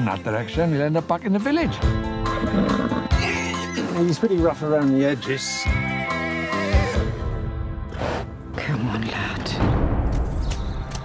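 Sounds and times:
horse whinnying: 0:02.2 - 0:03.8, 0:05.9 - 0:07.2.

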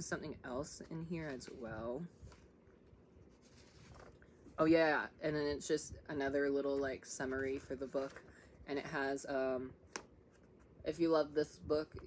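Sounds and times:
paper rustling: 0:01.2 - 0:04.5, 0:06.7 - 0:08.5.

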